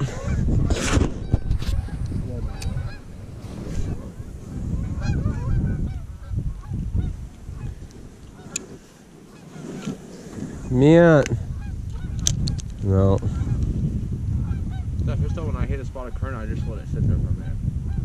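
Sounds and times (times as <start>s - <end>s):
geese honking: 1.2s - 10.7s, 11.5s - 12.3s, 14.4s - 15.4s.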